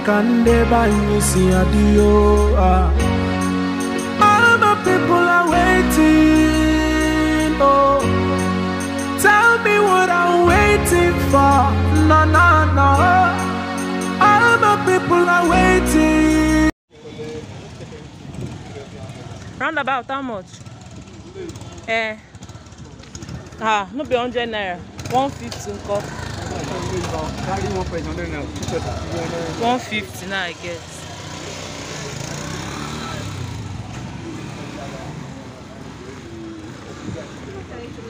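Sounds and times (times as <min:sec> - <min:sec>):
street noise: 0:00.0 - 0:38.0
small motorcycle engine idling: 0:17.0 - 0:35.3
faint voices: 0:25.3 - 0:38.0.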